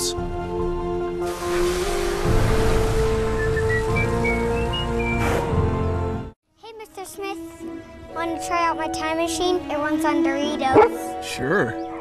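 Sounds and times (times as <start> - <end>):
background music with held notes: 0.0 - 12.0
water spraying from blowhole: 1.1 - 5.6.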